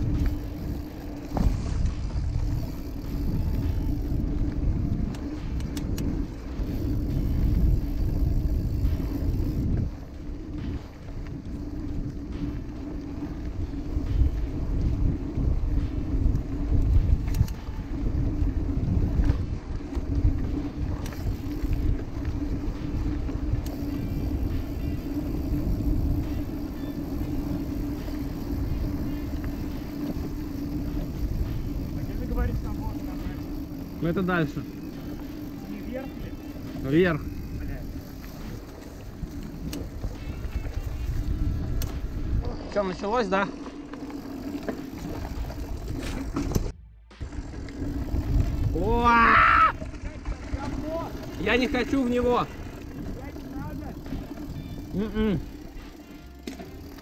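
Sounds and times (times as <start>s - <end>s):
wind rumble on microphone: 0.0s - 43.4s, 44.0s - 56.0s
bike tyres on dirt: 0.0s - 57.0s.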